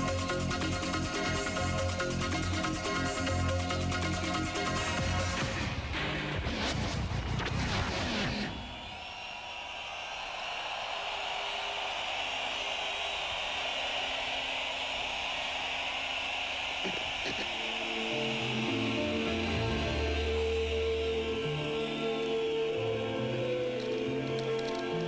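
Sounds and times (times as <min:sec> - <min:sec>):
hissing noise wash: 0:08.6 - 0:23.7.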